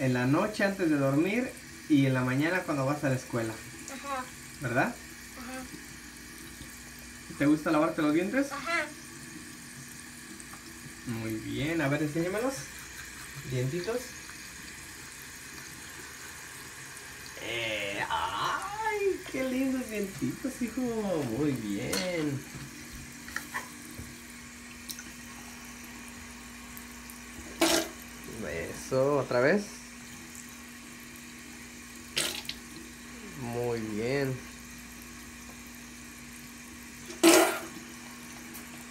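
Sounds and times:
tap running into sink: 27.3 - 28.0.

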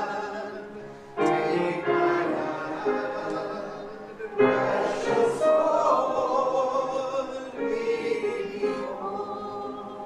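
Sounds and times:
group singing a gospel hymn: 0.0 - 10.0
piano: 0.0 - 10.0.

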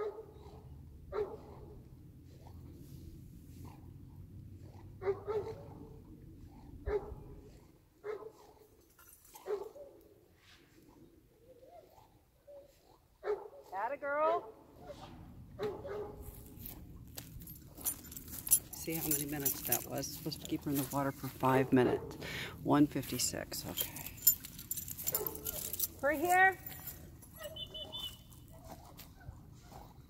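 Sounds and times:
dog barking: 0.0 - 0.4, 1.1 - 1.7, 5.0 - 5.7, 6.8 - 7.2, 8.0 - 8.4, 9.4 - 10.0, 12.5 - 13.7, 15.6 - 16.2, 25.0 - 25.8, 27.4 - 29.7
dog whining: 26.8 - 28.6.

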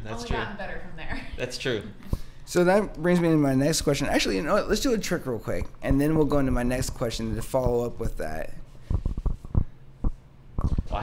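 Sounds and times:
short dull thumps: 8.8 - 11.0.

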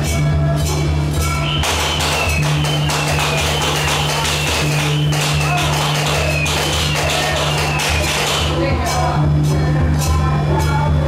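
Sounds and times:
drum and cymbal beat: 0.0 - 11.0.

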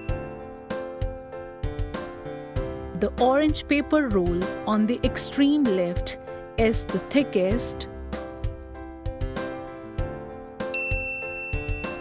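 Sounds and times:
bright ding chime: 0.0 - 0.6, 10.7 - 12.0
children's music with steady beat: 0.0 - 12.0.

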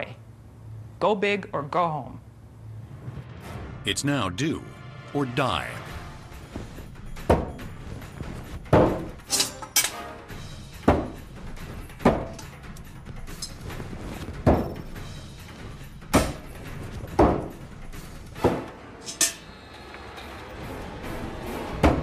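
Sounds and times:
background music: 2.6 - 22.0.

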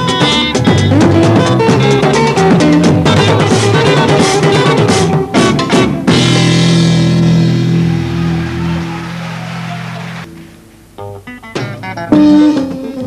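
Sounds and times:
electric guitar picking single notes: 10.3 - 13.0.

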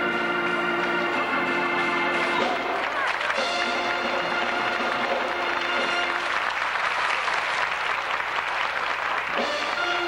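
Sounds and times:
band music: 0.0 - 10.0
audience applauding: 1.1 - 10.0.

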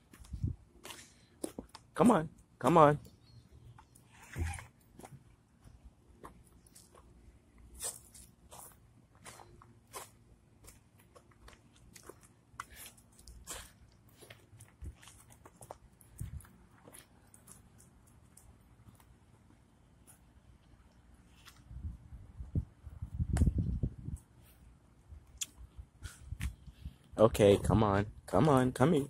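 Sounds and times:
footsteps on pavement: 0.0 - 1.8, 7.7 - 17.8.

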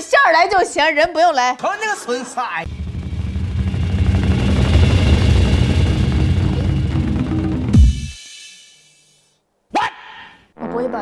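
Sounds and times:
low rumble with rapid flutter: 2.7 - 8.1.

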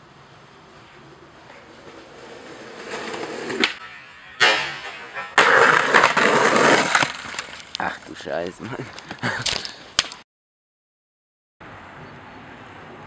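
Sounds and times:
skateboard wheels rolling on asphalt: 0.0 - 10.2
skateboard landing impact: 1.0 - 7.7
skateboard tail pop: 4.4 - 7.6.

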